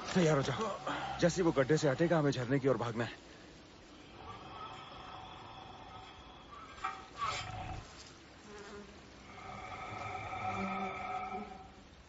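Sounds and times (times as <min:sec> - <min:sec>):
low steady buzzing: 0:00.0 - 0:12.0.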